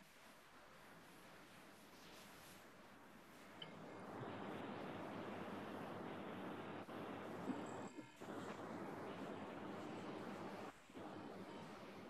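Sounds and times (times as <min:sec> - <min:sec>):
faint room noise hiss: 0:00.0 - 0:12.0.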